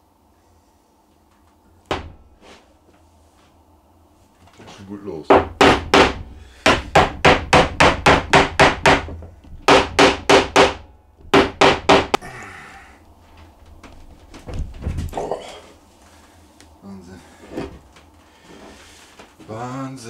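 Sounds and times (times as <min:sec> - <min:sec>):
mallet knocking wood: 0:05.3 - 0:12.2.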